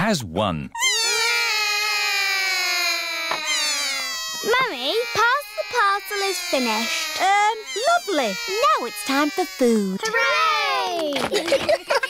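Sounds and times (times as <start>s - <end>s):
cartoon children calling out: 0.8s - 11.2s
children speaking: 4.4s - 11.6s.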